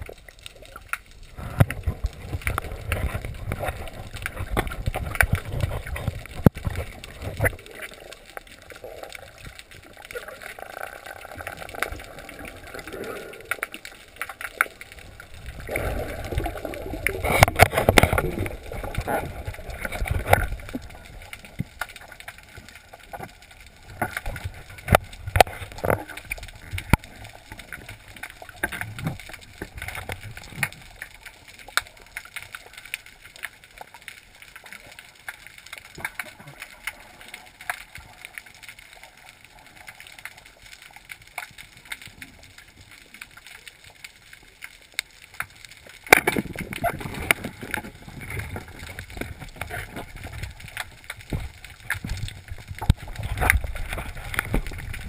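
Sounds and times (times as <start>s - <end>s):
muffled underwater rushing: 0.0s - 32.6s, 46.0s - 55.0s.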